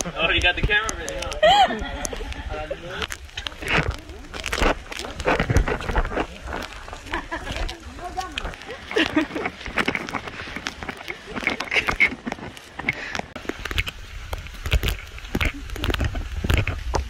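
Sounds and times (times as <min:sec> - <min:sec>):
people talking: 0:00.0 - 0:09.5
footsteps on muddy trail: 0:00.0 - 0:17.0
people laughing: 0:01.2 - 0:03.1, 0:07.0 - 0:08.0, 0:08.6 - 0:09.7.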